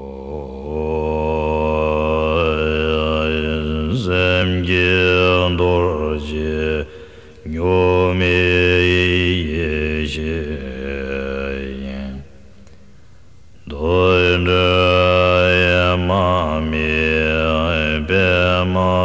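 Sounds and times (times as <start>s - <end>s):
low-pitched chanting: 0.0s - 12.7s, 13.6s - 19.0s.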